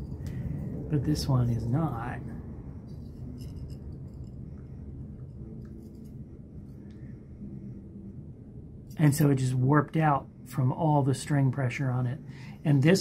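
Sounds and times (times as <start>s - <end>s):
low room hum: 0.0s - 13.0s
faint metal clicks and scraping: 2.8s - 7.0s.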